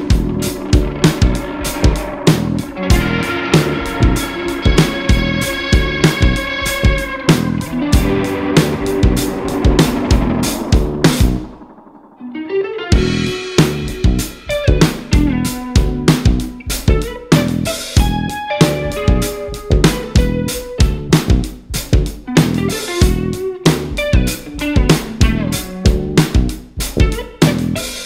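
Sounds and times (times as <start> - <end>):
guitar-led band music: 0.0 - 28.0.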